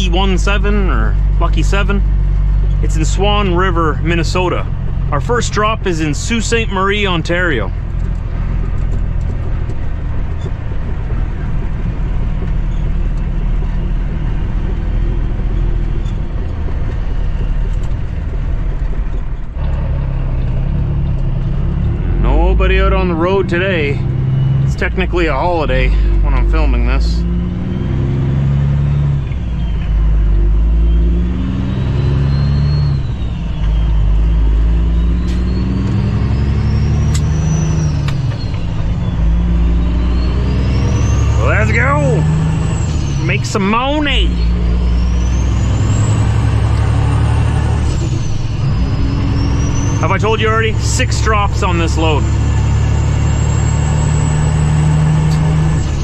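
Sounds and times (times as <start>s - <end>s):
diesel truck engine drone: 0.0s - 56.0s
faint high whistle: 30.7s - 37.9s.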